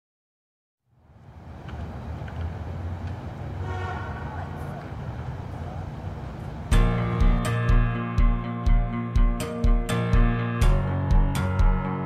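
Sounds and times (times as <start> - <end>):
low rumble of traffic: 0.8 - 7.4
car horn: 3.6 - 4.4.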